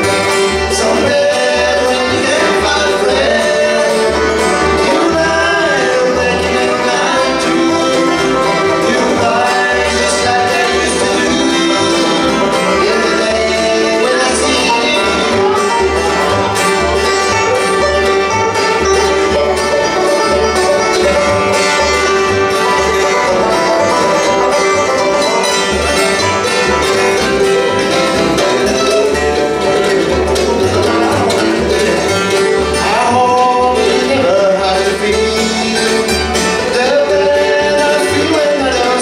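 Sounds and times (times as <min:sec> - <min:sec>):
acoustic guitar: 0:00.0 - 0:39.0
banjo: 0:00.0 - 0:39.0
fiddle: 0:00.0 - 0:39.0
mandolin: 0:00.0 - 0:39.0
upright bass plucking: 0:00.0 - 0:39.0.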